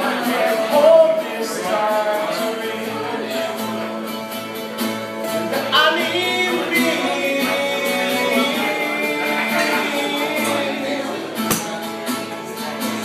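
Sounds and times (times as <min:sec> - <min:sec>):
person singing: 0:00.0 - 0:03.8, 0:05.5 - 0:13.0
acoustic guitars strummed: 0:00.0 - 0:13.0.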